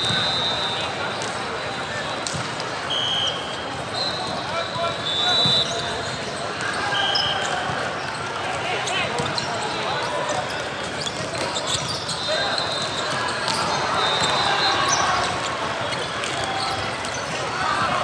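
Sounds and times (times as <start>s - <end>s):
many voices chattering: 0.0s - 18.0s
volleyballs bouncing and struck: 1.1s - 2.8s, 5.4s - 12.2s, 12.9s - 14.4s, 15.2s - 18.0s
short high squeaks: 11.0s - 17.2s.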